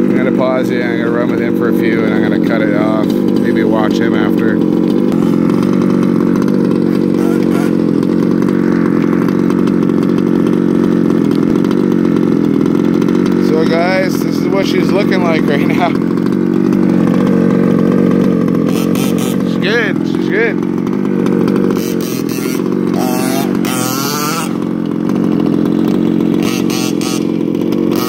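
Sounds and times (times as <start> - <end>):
small two-stroke engine idling: 0.0 - 28.0.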